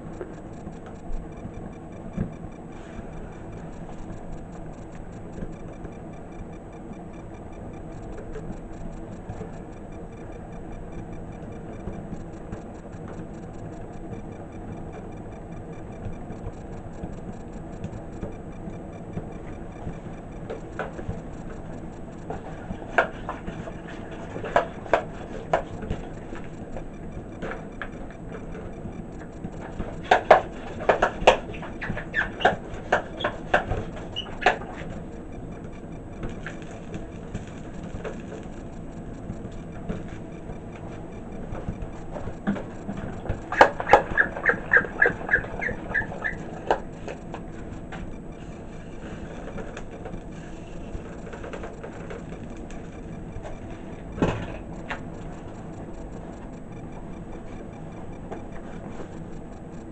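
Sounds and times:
background hum: 0.0s - 59.9s
faint regular ticking: 0.0s - 59.9s.

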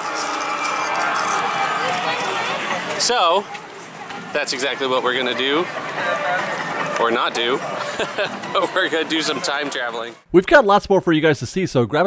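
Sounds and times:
crowd talking: 0.0s - 10.3s.

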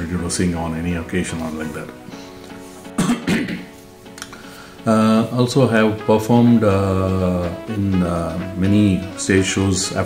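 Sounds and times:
soft background music: 0.0s - 10.0s
man clearing throat: 3.0s - 3.7s.

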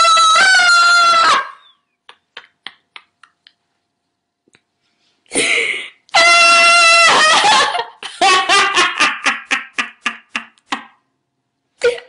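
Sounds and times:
man laughing hard: 5.4s - 11.0s.

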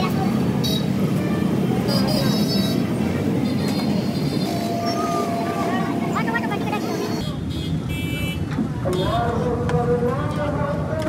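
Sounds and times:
background voices and chatter: 0.0s - 7.6s
traffic noise: 0.0s - 11.0s.

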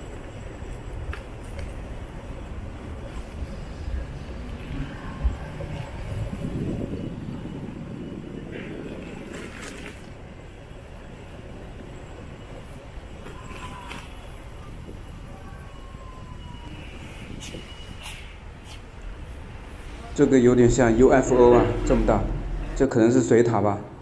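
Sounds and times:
low street rumble: 0.0s - 24.0s.

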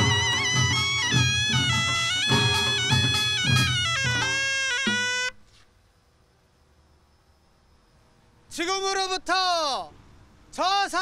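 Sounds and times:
reedy wind instrument note: 0.0s - 5.4s.

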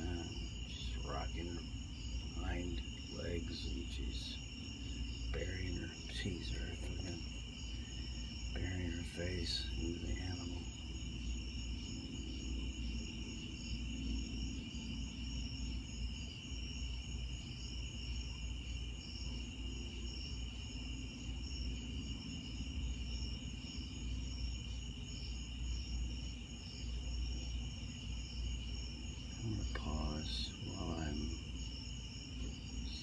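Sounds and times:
crickets chirping: 0.0s - 33.0s.

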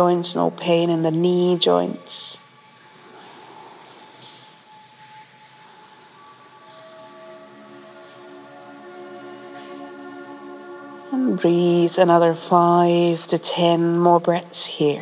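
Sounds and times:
ambient music of held tones: 0.0s - 15.0s.

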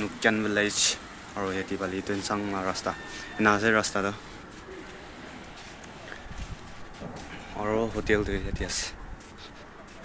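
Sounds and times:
steady background noise: 0.0s - 10.0s
man's voice: 7.4s - 9.0s.

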